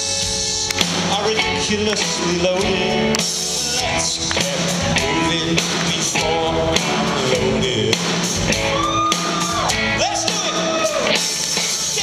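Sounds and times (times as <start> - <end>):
rock band playing: 0.0 - 12.0
shouted vocals: 8.6 - 12.0.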